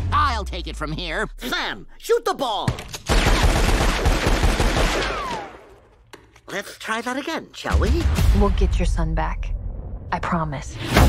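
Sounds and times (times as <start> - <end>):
cartoon revolver gunfire: 3.1 - 5.7.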